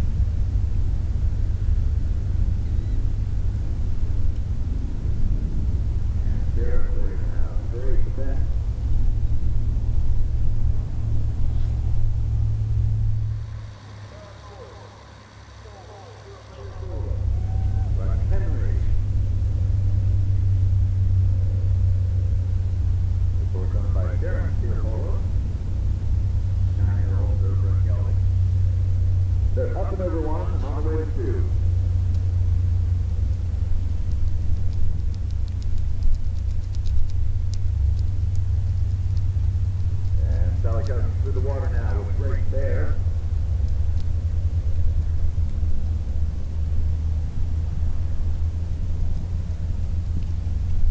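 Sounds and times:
faint distant speech: 13.2 - 19.0.

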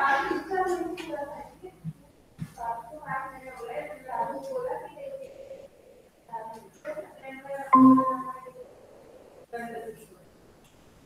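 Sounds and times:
electronic notification chime: 7.8 - 8.4.

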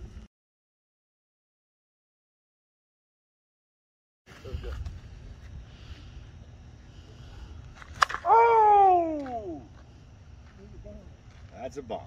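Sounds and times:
bat cracking a softball: 7.6 - 9.9
man shouting whooo: 8.2 - 9.7.

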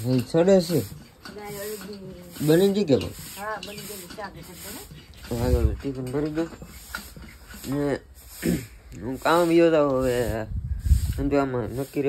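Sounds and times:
steady hiss: 6.0 - 12.0.

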